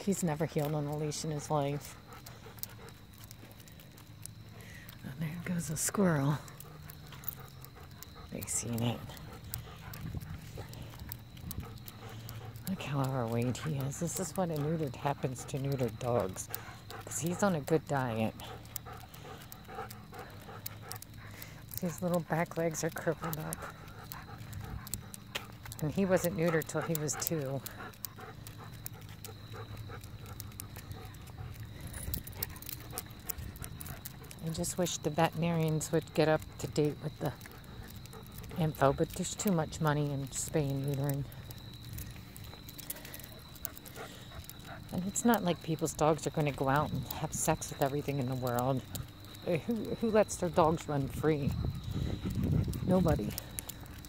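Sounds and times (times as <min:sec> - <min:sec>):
claws clicking on asphalt: 0:00.0 - 0:54.0
dog panting: 0:00.0 - 0:54.0.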